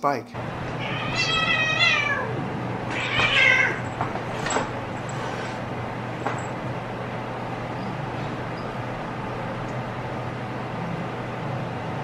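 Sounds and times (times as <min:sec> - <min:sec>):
cats scuffling: 0:00.6 - 0:06.8
cat yowling: 0:00.8 - 0:04.0.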